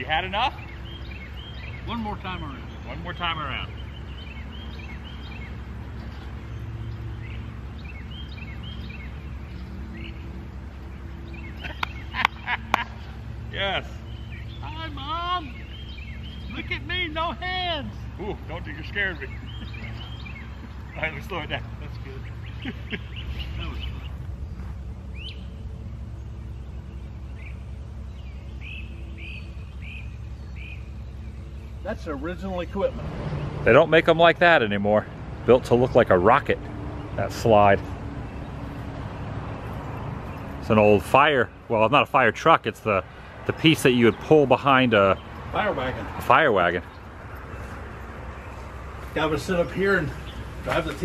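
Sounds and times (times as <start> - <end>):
birds chirping: 0.0 - 51.0
low outdoor rumble: 0.0 - 51.0.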